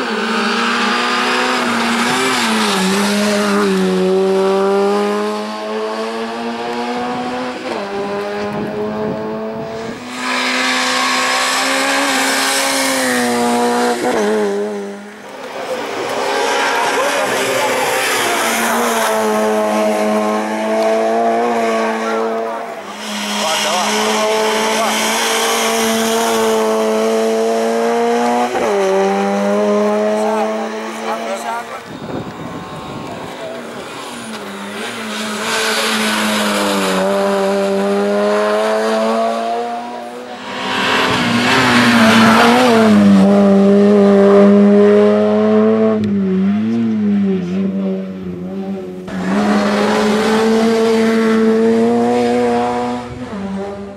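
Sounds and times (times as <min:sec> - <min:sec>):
racing car engine at high revs: 0:00.0 - 0:53.9.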